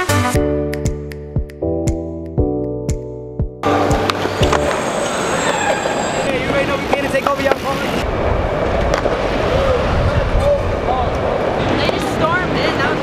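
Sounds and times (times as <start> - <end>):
skateboard wheels rolling on concrete: 3.6 - 13.0
skateboards clacking on ground: 3.7 - 7.8, 8.6 - 9.3
voices chattering: 3.8 - 8.1.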